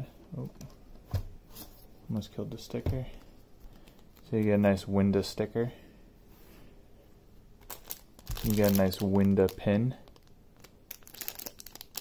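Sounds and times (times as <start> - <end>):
plastic bag crinkling: 7.6 - 12.0.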